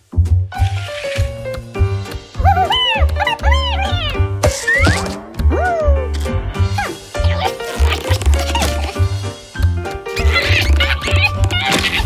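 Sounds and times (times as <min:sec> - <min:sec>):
cartoon music with bass beat: 0:00.0 - 0:12.0
squeaky cartoon mouse voice: 0:02.4 - 0:05.0, 0:06.8 - 0:09.0, 0:10.2 - 0:12.0.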